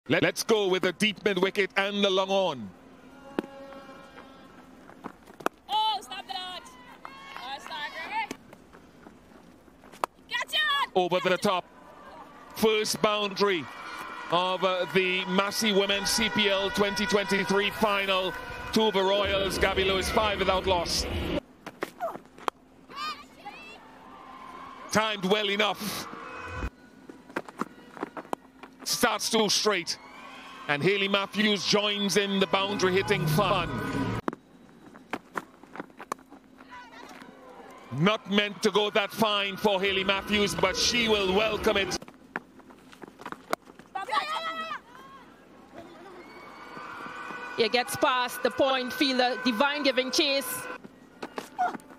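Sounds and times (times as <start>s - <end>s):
faint outdoor ambience: 0.1s - 51.9s
man speaking: 30.7s - 33.9s, 37.9s - 42.0s.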